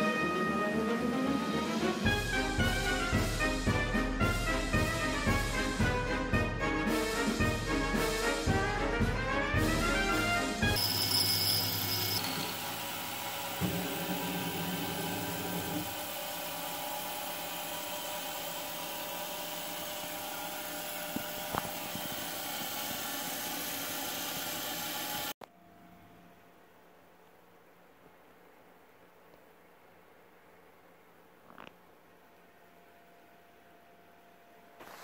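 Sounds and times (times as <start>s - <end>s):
milling machine cutting plastic: 10.8s - 25.4s.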